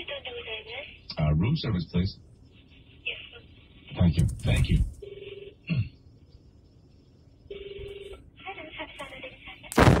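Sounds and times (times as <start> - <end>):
telephone ringing: 5.0 - 5.6, 7.5 - 8.2
sudden burst of noise: 9.8 - 10.0.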